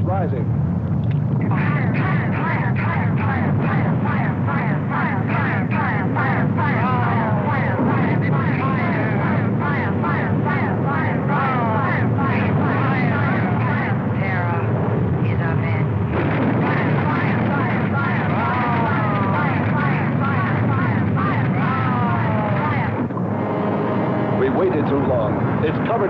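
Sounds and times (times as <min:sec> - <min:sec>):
dense steady rumble: 0:00.0 - 0:26.0
wailing gliding tones: 0:01.4 - 0:26.0.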